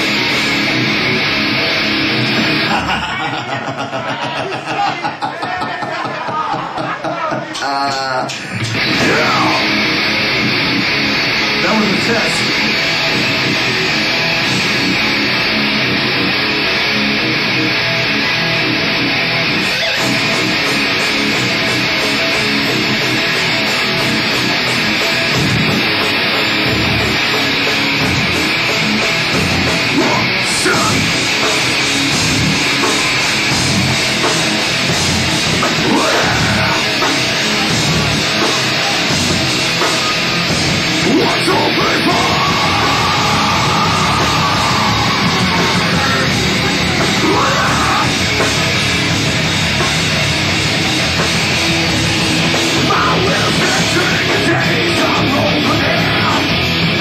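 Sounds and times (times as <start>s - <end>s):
live rock band playing: 0.0s - 5.0s, 6.0s - 57.0s
distorted electric guitar: 0.0s - 57.0s
drums: 0.0s - 57.0s.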